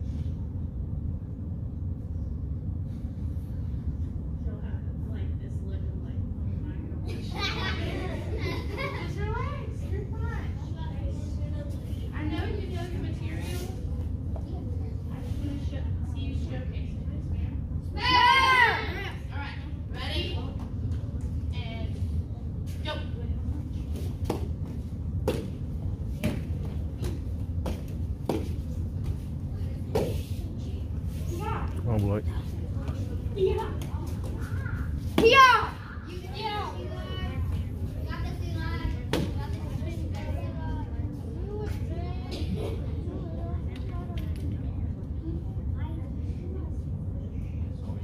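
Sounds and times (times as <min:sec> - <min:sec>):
room hum: 0:00.0 - 0:48.0
indistinct children's voices: 0:33.0 - 0:48.0.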